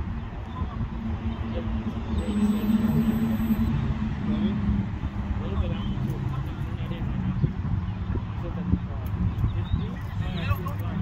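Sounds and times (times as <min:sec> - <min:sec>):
low hum: 0:00.0 - 0:05.8.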